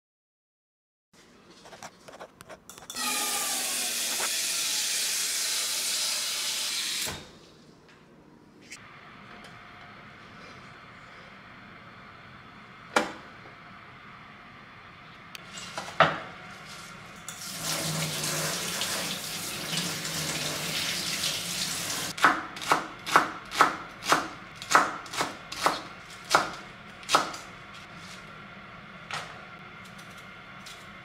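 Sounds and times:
kitchen tap running: 17.3s - 22.2s
knife chopping on wooden board: 22.2s - 27.4s.

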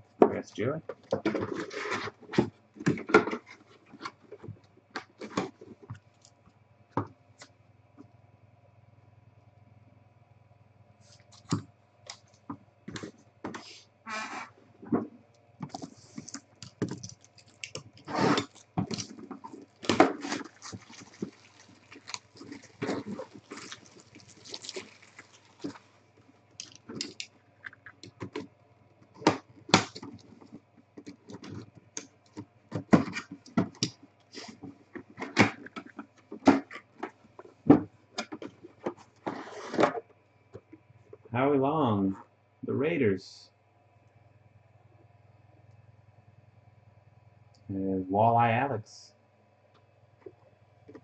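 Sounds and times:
plastic shrink-wrap crinkling: 15.7s - 28.1s.

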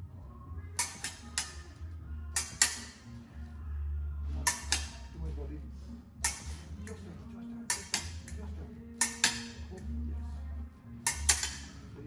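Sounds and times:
fencing blades clashing: 0.8s - 3.2s, 4.4s - 5.2s, 6.2s - 9.9s, 11.0s - 11.9s.

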